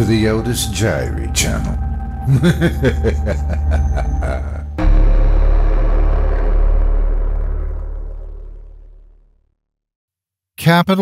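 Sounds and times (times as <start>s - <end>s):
deep rumbling cinematic boom: 0.0s - 9.6s.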